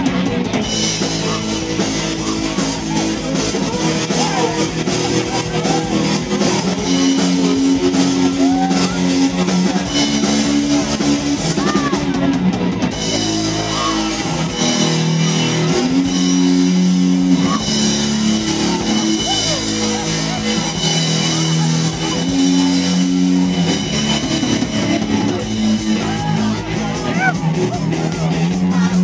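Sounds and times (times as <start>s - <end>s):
bass guitar: 0.0s - 29.0s
drum kit: 0.0s - 29.0s
electric guitar: 0.0s - 29.0s
voices singing: 0.0s - 29.0s.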